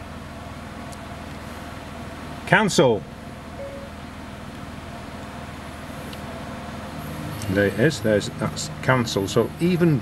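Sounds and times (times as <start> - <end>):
faint tone: 3.6 - 4.0.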